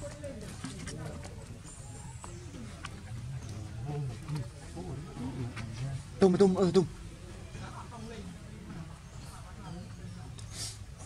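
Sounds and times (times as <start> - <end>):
indistinct voices talking: 0.0 - 11.0.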